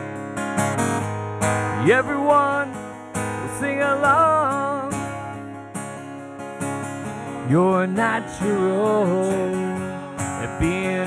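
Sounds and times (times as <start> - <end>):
acoustic guitar strumming chords: 0.0 - 11.0
person singing: 1.8 - 2.8, 3.4 - 5.1, 7.4 - 11.0.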